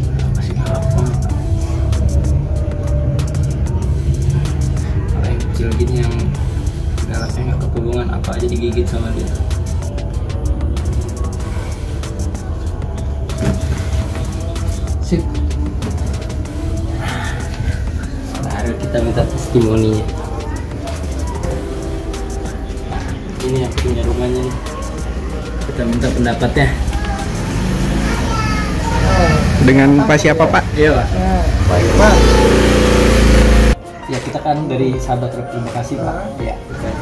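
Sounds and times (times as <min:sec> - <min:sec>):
engine rumbling: 0:00.0 - 0:33.8
background music with heavy bass: 0:00.0 - 0:37.0.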